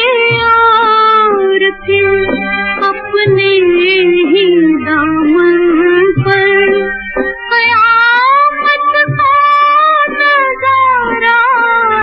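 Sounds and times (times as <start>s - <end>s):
instrumental film song accompaniment: 0.0s - 12.0s
woman singing a long note: 2.8s - 6.9s, 7.5s - 12.0s.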